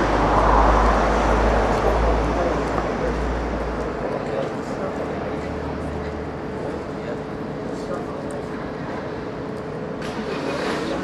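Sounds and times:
traffic noise with hum: 0:00.0 - 0:11.0.

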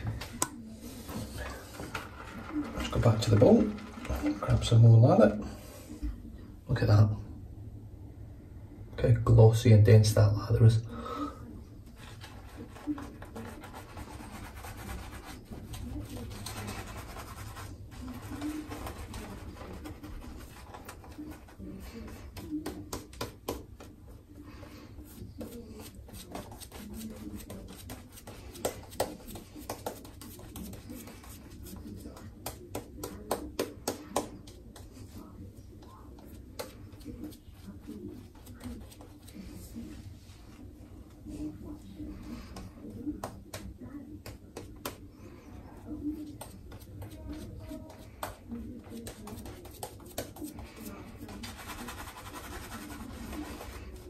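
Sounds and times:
shaving brush scratchy strokes: 0:12.0 - 0:21.5, 0:25.1 - 0:32.0, 0:49.0 - 0:54.0.

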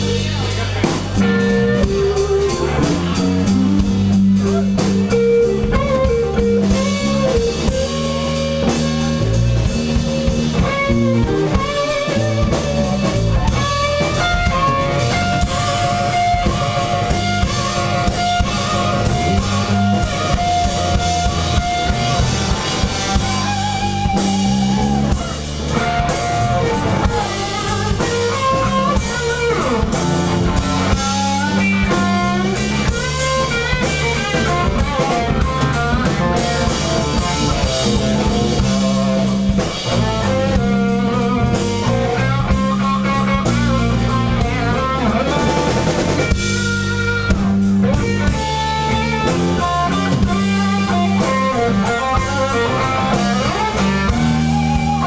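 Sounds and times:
bass guitar: 0:00.0 - 0:55.0
drum kit: 0:00.0 - 0:55.0
electric guitar solo: 0:00.0 - 0:55.0.

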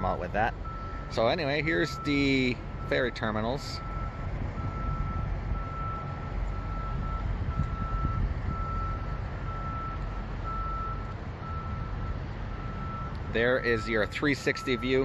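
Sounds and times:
reversing alarm beeping: 0:00.5 - 0:15.0.

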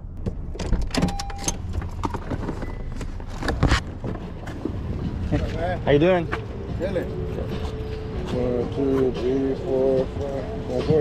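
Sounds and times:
car door opening: 0:00.2 - 0:04.8
short beep: 0:01.1 - 0:01.6.

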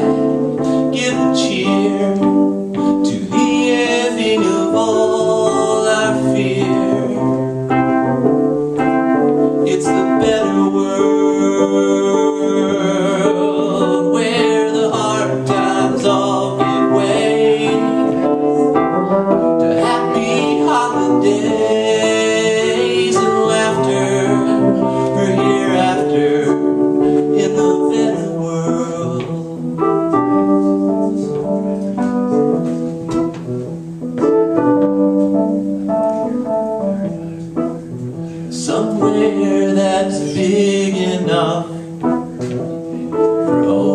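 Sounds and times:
man singing: 0:00.0 - 0:07.6, 0:09.6 - 0:29.8, 0:38.4 - 0:43.9
keyboard chords: 0:00.0 - 0:43.9.

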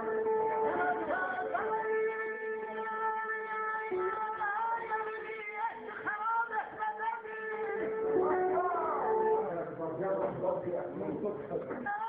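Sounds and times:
electric guitar melody with bends: 0:00.0 - 0:10.0.

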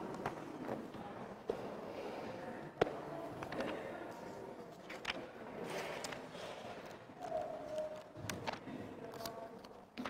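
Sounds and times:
congregation room noise: 0:00.0 - 0:10.0.

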